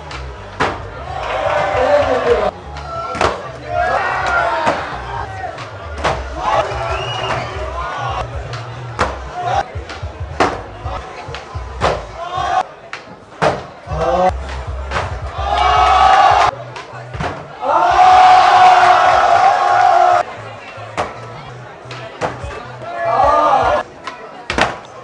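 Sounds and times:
bass-heavy music: 0.0 - 12.6, 13.8 - 23.8
crowd shouting and cheering: 0.0 - 25.0.

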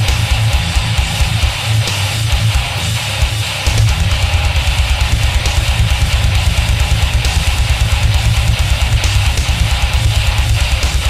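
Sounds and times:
heavy metal band music: 0.0 - 11.0.

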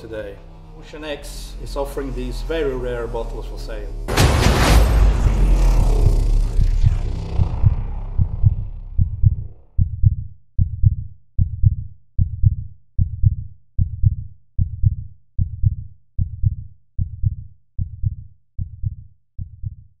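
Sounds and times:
background music: 0.0 - 9.6
deep steady thump: 0.0 - 16.4.

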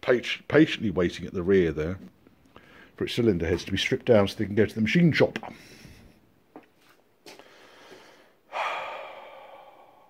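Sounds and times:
man sighing: 7.8 - 10.0.

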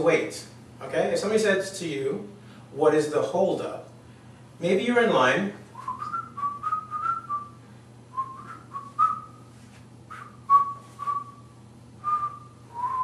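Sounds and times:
man whistling a tune: 5.8 - 9.4, 10.1 - 13.0.

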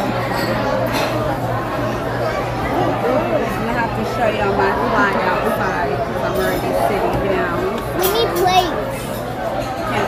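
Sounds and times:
diners chattering: 0.0 - 10.0.

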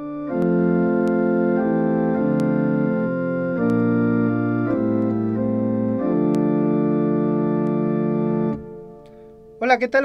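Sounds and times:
organ playing held chords: 0.0 - 10.0.

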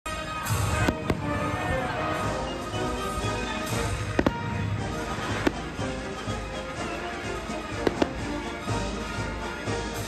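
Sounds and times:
music: 0.1 - 10.0
fireworks bangs: 0.4 - 9.3.

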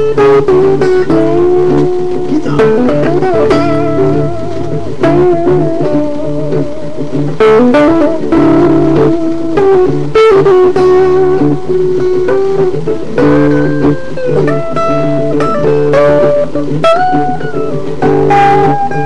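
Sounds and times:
rock guitar lead with bent notes: 0.0 - 19.0
steady low bass: 2.3 - 6.2.

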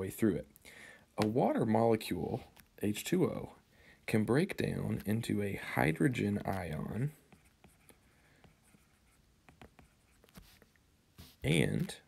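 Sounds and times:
stylus writing on tablet: 4.6 - 12.0.

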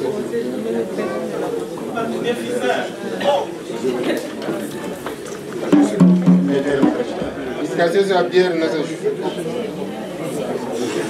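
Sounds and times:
crowd chatter: 0.0 - 11.0
low musical notes: 5.7 - 7.6.

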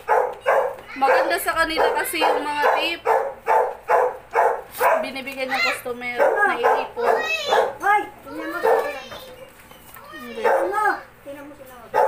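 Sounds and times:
dog barking: 0.0 - 5.2, 6.1 - 7.9, 8.5 - 9.0, 10.4 - 10.9.

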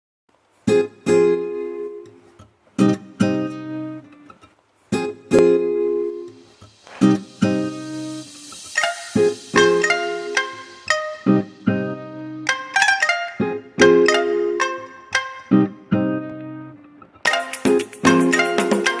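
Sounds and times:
picked guitar notes: 0.6 - 19.0
strummed guitar chords: 0.6 - 19.0.

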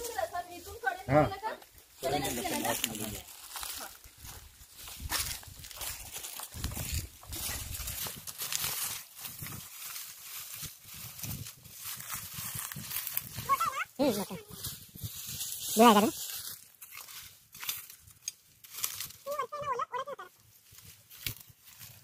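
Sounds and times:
straw rustling and crackling: 0.0 - 22.0.

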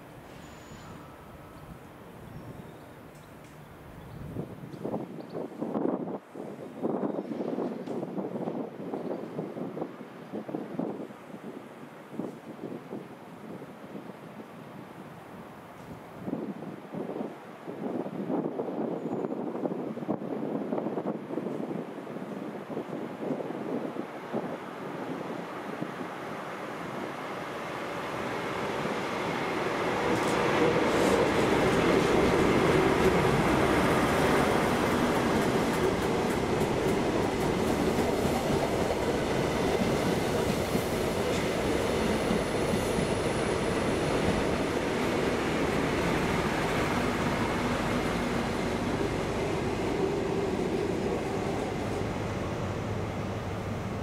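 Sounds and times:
diesel train passing slowly: 0.0 - 5.0, 20.8 - 54.0.

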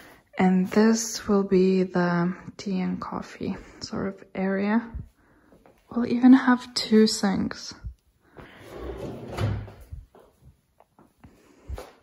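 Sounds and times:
drawer sliding on runners: 8.6 - 9.8.

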